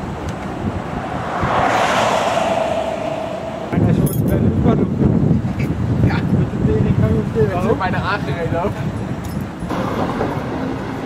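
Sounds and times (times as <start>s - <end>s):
wind on microphone: 0.0s - 9.6s
vehicle passing by: 0.4s - 4.6s.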